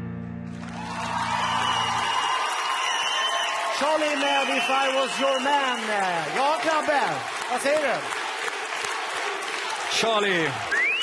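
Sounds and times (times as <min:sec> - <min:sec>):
sustained piano chord: 0:00.0 - 0:01.4
audience applauding and cheering: 0:00.4 - 0:11.0.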